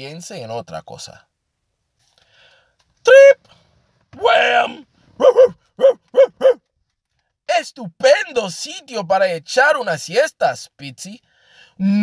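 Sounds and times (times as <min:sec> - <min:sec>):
man imitating dog barks: 0:03.1 - 0:03.4, 0:04.2 - 0:06.6.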